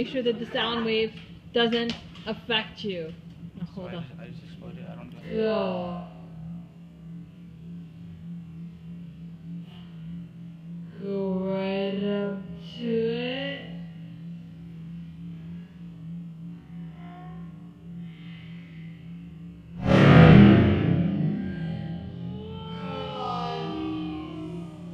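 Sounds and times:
background music with low hum: 0.0 - 24.9.

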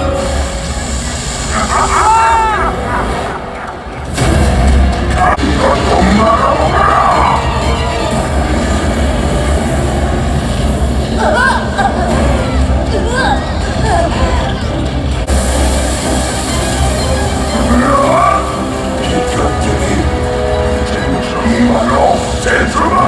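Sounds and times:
dramatic music over loudspeakers: 0.0 - 23.0.

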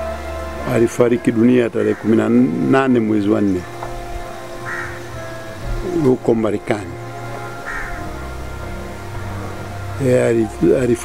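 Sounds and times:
soft background music: 0.0 - 11.0
crow cawing: 1.7 - 2.7, 4.5 - 6.2, 7.5 - 8.3.

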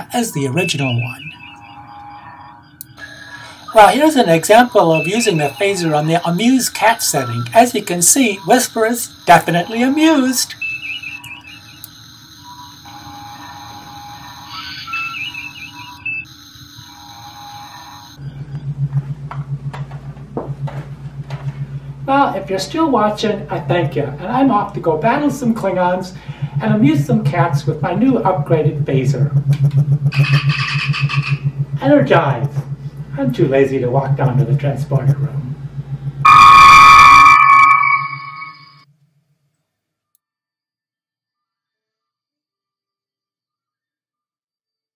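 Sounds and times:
low rapidly pulsing hum: 0.0 - 11.9, 13.0 - 38.8
warbling chirp: 0.0 - 12.0, 13.4 - 38.8
electronic beeping tones: 0.0 - 38.8.

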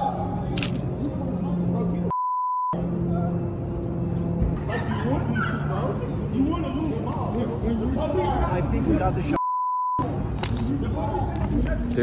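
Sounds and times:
censor bleep tone: 2.1 - 2.8, 9.4 - 10.0
background music: 2.7 - 9.3.

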